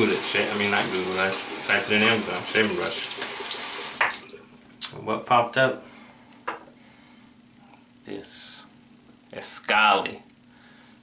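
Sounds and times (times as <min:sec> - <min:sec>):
sink tap running: 0:00.0 - 0:04.4.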